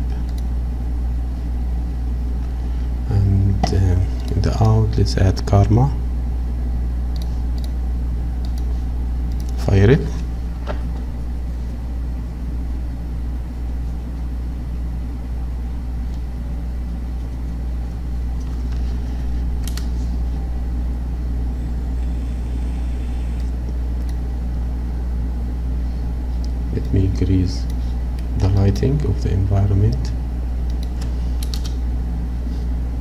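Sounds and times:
low background hum: 0.0 - 33.0
sharp click: 19.6 - 19.9, 30.7 - 31.8.

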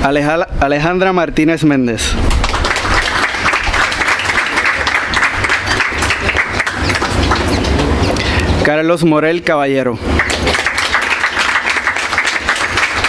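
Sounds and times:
audience applauding: 2.3 - 8.5, 10.1 - 13.0.

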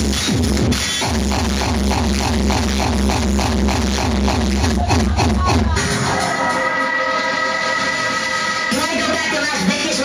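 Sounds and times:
drums: 0.0 - 10.0.

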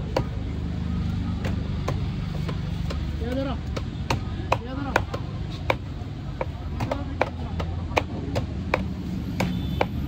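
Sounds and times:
knife chopping on wooden block: 1.4 - 10.0.

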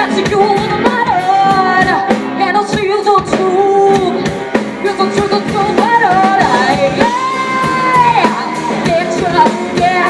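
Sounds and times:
drum kit: 0.0 - 10.0
electric guitars: 0.0 - 10.0
woman singing and shouting: 4.8 - 10.0.

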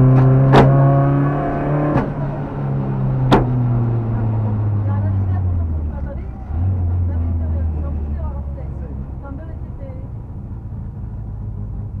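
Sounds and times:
car engine rumbling at low revs: 0.0 - 12.0.

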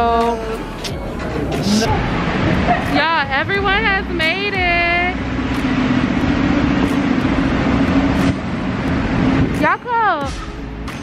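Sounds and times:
traffic noise: 0.0 - 11.0
vehicle engine droning: 0.0 - 11.0.

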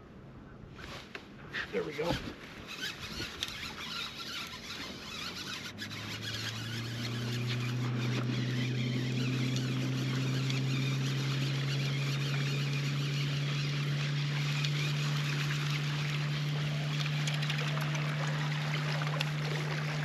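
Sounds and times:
electric motor humming: 2.7 - 20.0.

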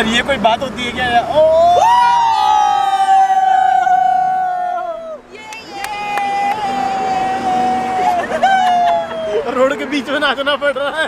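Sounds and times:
men cheering in held shout: 1.4 - 9.6.

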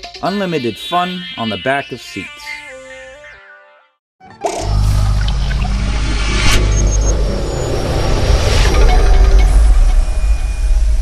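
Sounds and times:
deep rumbling drone: 4.5 - 11.0
whoosh: 4.8 - 11.0.

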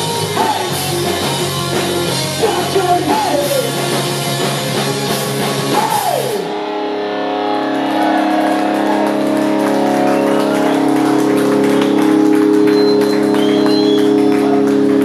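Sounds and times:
electric guitars and bass ringing: 0.0 - 15.0.

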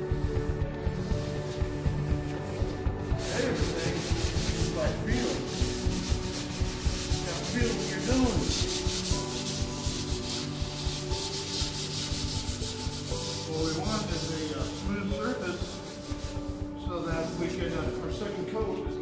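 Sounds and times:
hand sanding wood: 0.0 - 18.9.

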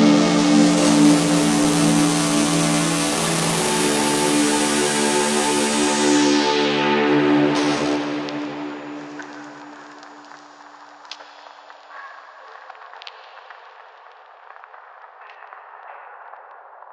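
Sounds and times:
held synth chord: 0.0 - 10.8.

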